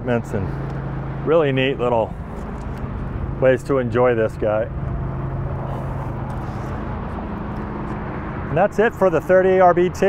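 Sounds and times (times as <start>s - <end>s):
low drone: 0.4s - 8.6s.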